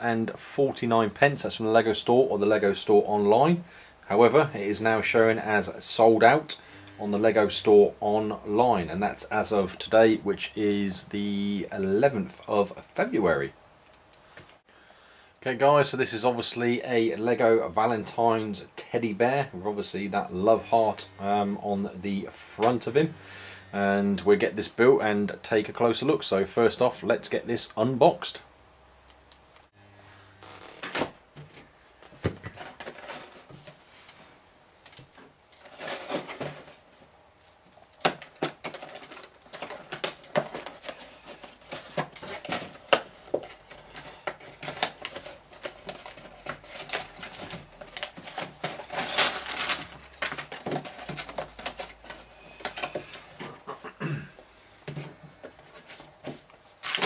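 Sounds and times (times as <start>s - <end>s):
clicks scrapes and rustles: 34.8s - 53.5s.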